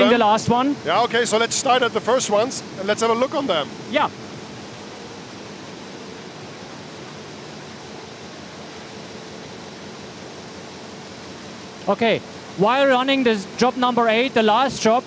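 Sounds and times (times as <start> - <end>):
faint hum: 0.0 - 15.0
printing press running hiss: 0.0 - 15.0.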